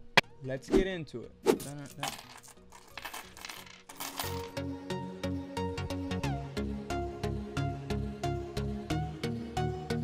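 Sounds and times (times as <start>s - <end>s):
coins clinking and jingling: 1.6s - 4.6s.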